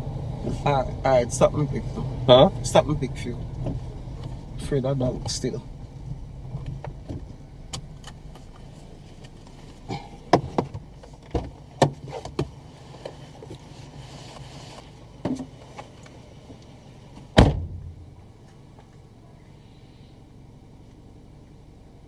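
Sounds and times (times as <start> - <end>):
low car engine hum: 0.0 - 22.0
clicks and knocks inside car: 3.5 - 4.4, 5.2 - 13.7, 15.2 - 16.1
car door shutting: 5.2 - 13.2, 17.2 - 18.1.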